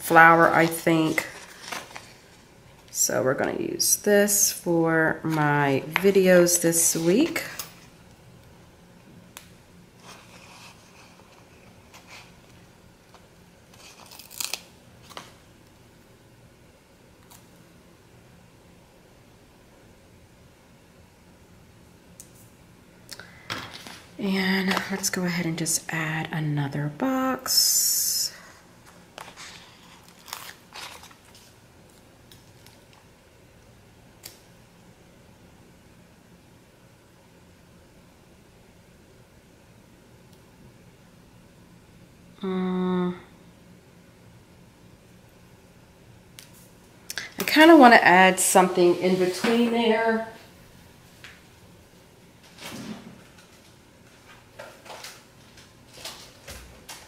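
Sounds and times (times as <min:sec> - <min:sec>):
paper rustling: 0:00.6 - 0:02.4, 0:28.8 - 0:31.6.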